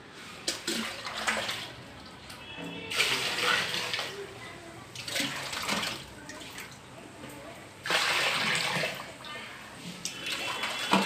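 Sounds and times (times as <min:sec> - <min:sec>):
water pouring into pot: 0:10.1 - 0:11.0.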